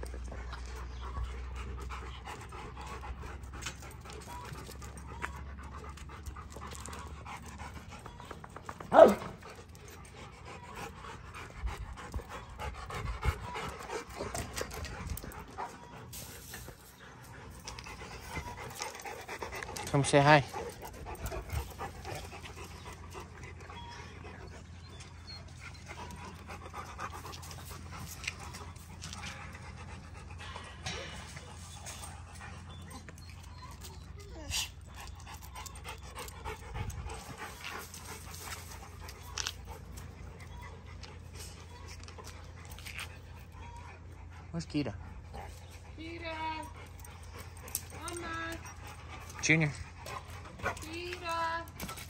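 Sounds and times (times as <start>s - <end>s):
dog panting: 0.0s - 52.0s.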